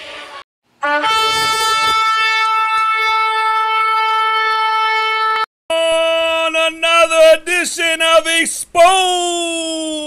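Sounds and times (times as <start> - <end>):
horn blast: 0.8 - 5.5.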